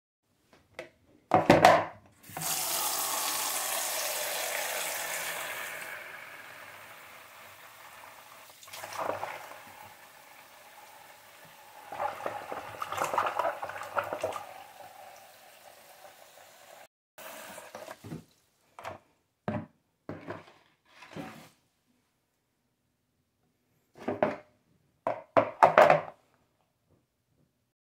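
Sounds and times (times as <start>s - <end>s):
knocks and splashes: 8.6s - 9.5s, 11.9s - 14.4s
hand stirring water: 11.8s - 14.6s.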